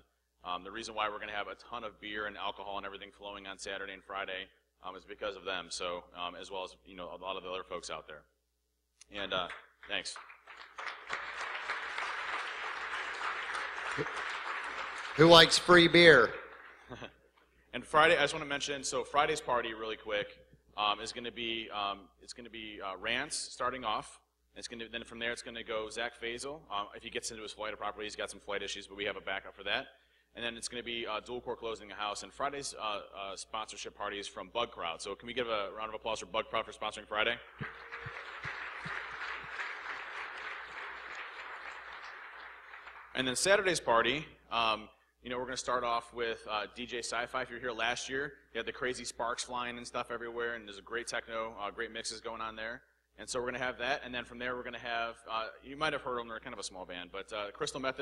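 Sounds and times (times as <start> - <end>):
audience applauding: 9.5 - 16.9, 37.5 - 43.4.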